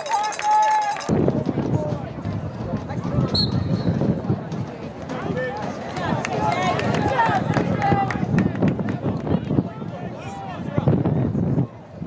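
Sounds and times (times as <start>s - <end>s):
people shouting and cheering: 0.0s - 2.2s, 4.8s - 11.1s.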